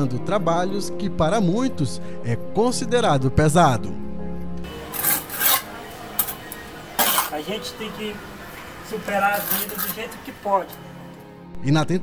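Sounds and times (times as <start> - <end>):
trowel scraping mortar on bricks: 4.7 - 7.6, 8.9 - 11.0.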